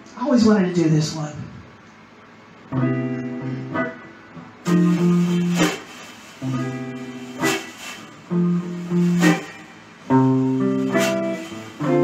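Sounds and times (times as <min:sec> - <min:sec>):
electric guitar chords: 0:02.6 - 0:12.0.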